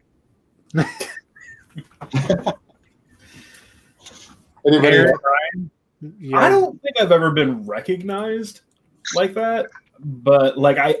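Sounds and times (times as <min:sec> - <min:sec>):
man laughing: 0:00.7 - 0:02.7, 0:04.8 - 0:05.2
man saying yeah: 0:04.7 - 0:08.2.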